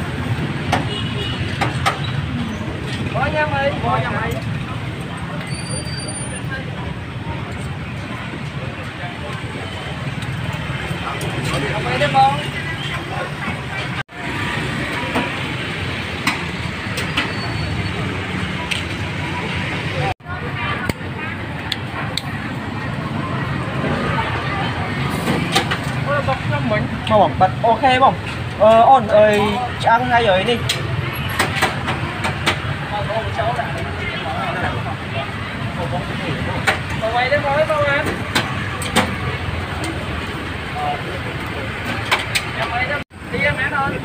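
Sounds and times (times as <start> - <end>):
traffic hum: 0.0 - 44.0.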